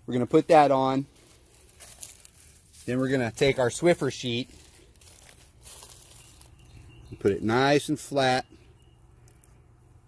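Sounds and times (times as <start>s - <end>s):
cleaning sheet rustling and crinkling: 0.1s - 6.6s.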